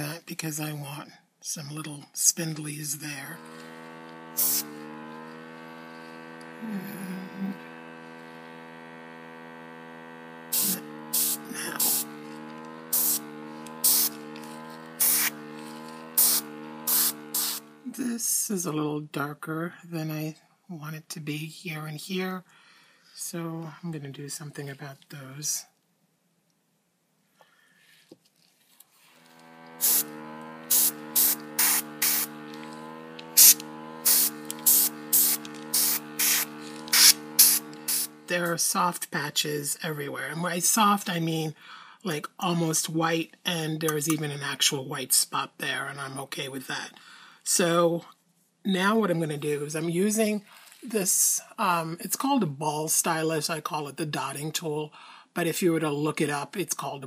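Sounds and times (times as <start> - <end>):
compressor motor humming: 2.4 - 18.0, 29.0 - 38.8
airbrush air hiss bursts: 4.4 - 4.8, 10.5 - 12.2, 12.9 - 17.8, 29.8 - 30.1, 30.7 - 32.6, 33.3 - 38.3.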